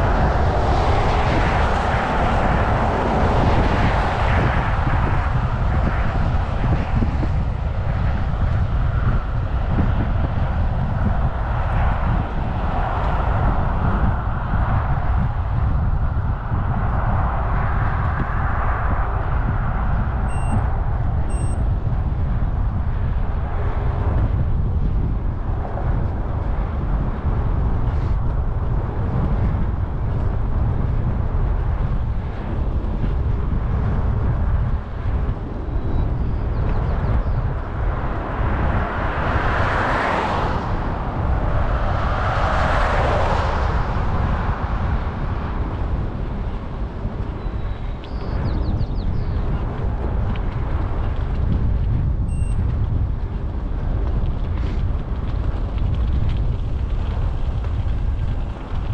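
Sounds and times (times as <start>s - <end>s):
vehicles passing: 0.0s - 35.7s, 37.4s - 48.4s
wind rumble on microphone: 0.0s - 58.9s.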